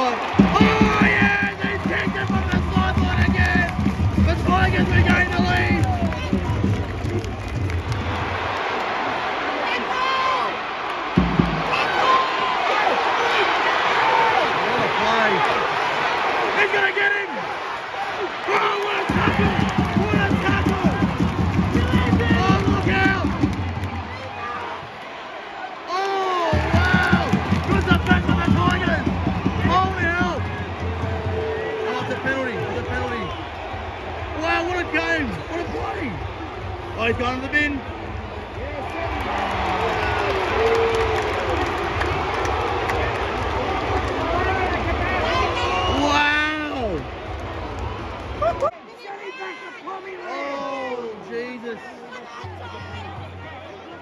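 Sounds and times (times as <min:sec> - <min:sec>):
stadium crowd voices: 0:00.0 - 0:54.0.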